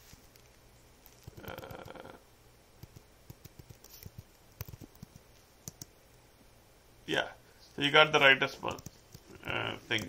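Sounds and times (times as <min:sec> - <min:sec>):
keyboard typing: 0:00.3 - 0:02.1, 0:02.8 - 0:05.9, 0:08.6 - 0:10.0.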